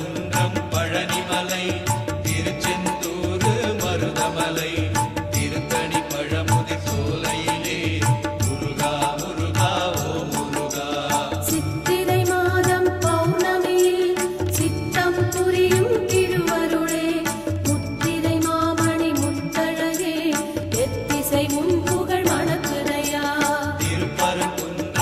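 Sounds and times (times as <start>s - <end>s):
devotional melody: 0.0s - 25.0s.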